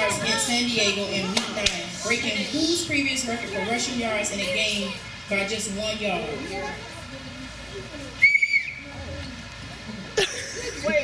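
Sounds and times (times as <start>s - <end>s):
high-pitched whistle: 8.2s - 8.8s.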